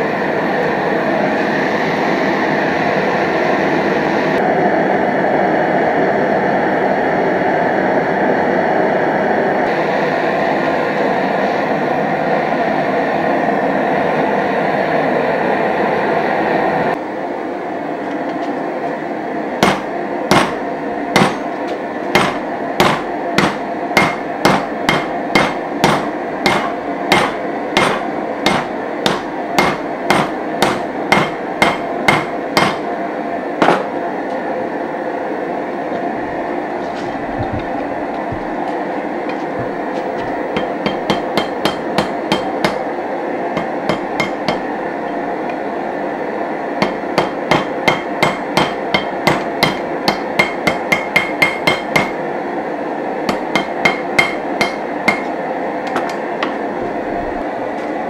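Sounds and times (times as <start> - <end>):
steady background noise: 0.0 - 58.0
hammer striking anvil: 19.6 - 20.6, 21.2 - 21.5, 22.2 - 32.8, 33.6 - 33.9, 40.6 - 42.8, 43.6 - 44.7, 46.8 - 52.2, 53.3 - 55.3.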